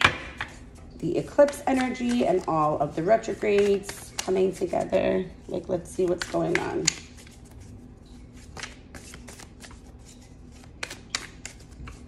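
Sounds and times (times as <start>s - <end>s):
cards being shuffled: 0.4s - 12.0s.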